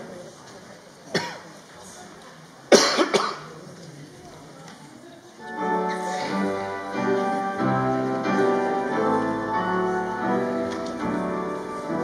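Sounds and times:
murmur of people: 0.0 - 12.0
person coughing: 2.7 - 3.5.

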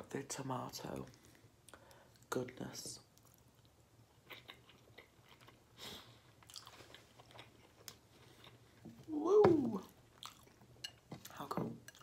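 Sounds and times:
faint chewing: 3.1 - 9.0, 9.8 - 12.0.

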